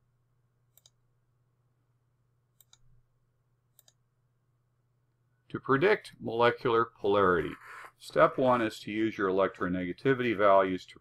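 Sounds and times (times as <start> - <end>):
computer mouse clicks: 0.7 - 1.0, 2.6 - 2.9, 3.7 - 4.0.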